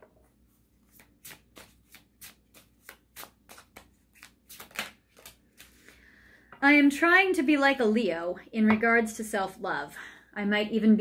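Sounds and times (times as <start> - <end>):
cards being shuffled: 0.8 - 6.0.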